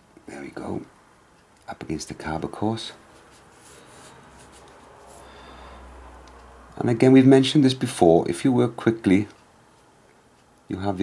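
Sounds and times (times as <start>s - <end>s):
brush strokes on paper: 3.0s - 5.3s.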